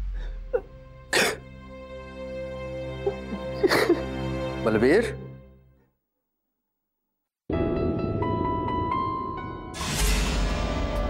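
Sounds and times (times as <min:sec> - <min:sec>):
boy sobbing: 0:03.0 - 0:04.1.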